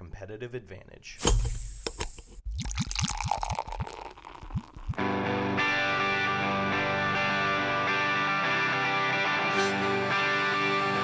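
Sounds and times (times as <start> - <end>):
beer glugging into a glass: 2.5 - 5.1.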